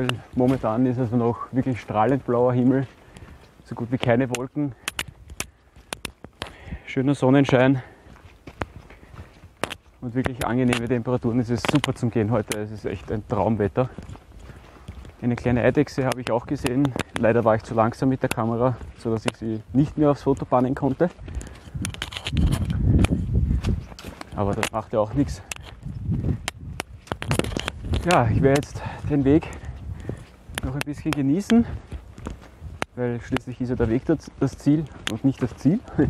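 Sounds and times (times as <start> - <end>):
footsteps on earth path: 0.0 - 36.0
wind buffeting microphone: 0.0 - 36.0.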